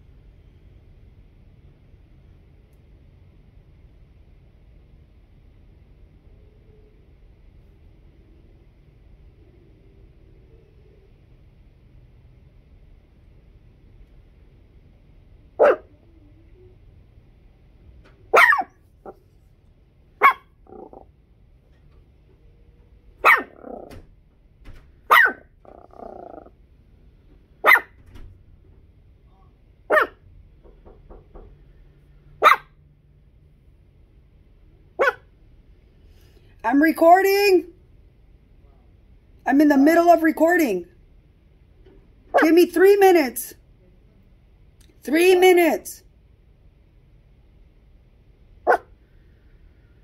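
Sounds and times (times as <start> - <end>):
dog barking: 15.6 - 16.0, 18.3 - 19.2, 20.2 - 21.0, 23.2 - 23.9, 25.1 - 26.5, 27.6 - 28.0, 29.9 - 30.2, 32.4 - 32.8, 35.0 - 35.3, 48.6 - 49.0.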